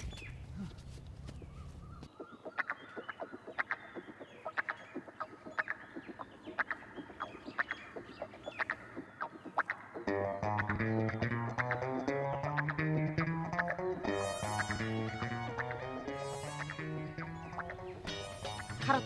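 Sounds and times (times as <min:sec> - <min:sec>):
chickens clucking: 0:02.0 - 0:10.8
guitar music with bass: 0:10.0 - 0:19.0.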